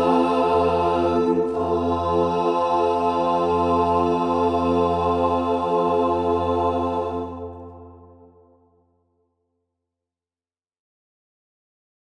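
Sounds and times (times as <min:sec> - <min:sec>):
choir singing a cappella: 0:00.0 - 0:08.5.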